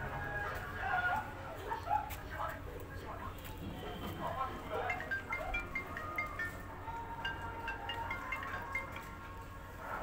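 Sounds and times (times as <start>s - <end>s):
high chiming notes: 4.8s - 9.5s.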